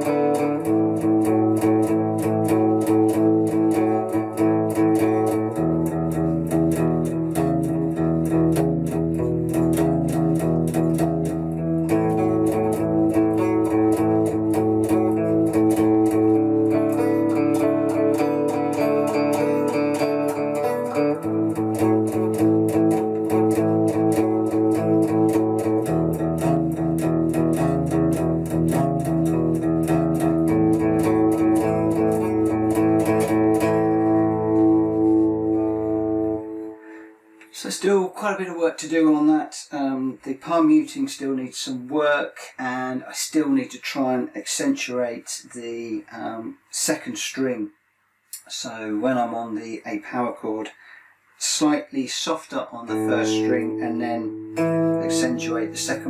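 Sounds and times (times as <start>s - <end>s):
electric guitar playing blues chords: 0.0s - 37.6s, 52.8s - 56.0s.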